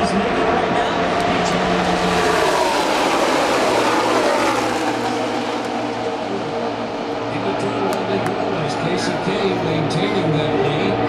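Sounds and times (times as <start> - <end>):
stock cars passing at race speed: 0.0 - 11.0.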